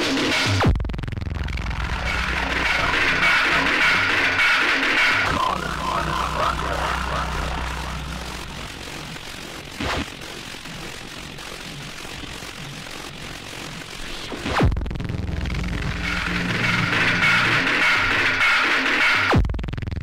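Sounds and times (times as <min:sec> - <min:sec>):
pounding electronic beat: 0:00.0 - 0:13.2
noisy synth drone: 0:00.0 - 0:19.3.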